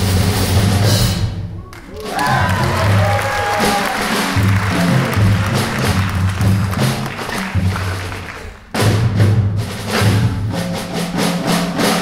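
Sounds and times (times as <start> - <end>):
drum kit with cymbals: 0.0 - 12.0
bass line: 2.2 - 10.6.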